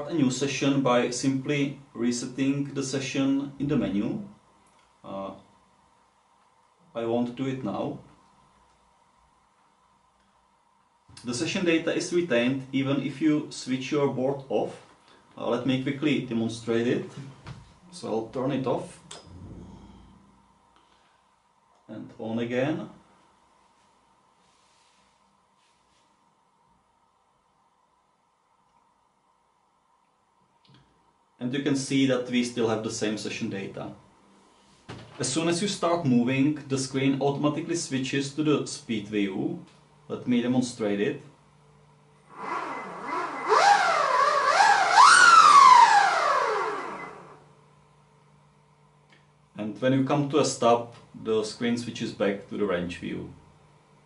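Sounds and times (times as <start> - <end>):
electric motor whining: 42.3 - 47.4.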